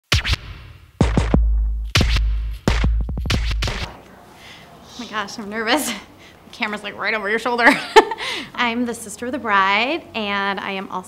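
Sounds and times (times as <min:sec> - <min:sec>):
record scratches: 0:00.1 - 0:04.2
deep bass note: 0:01.0 - 0:04.3.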